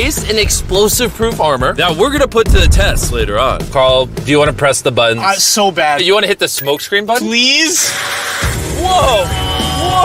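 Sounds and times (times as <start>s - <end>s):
music: 0.0s - 5.9s, 7.4s - 10.0s
smoke screen low rumble: 0.2s - 5.1s.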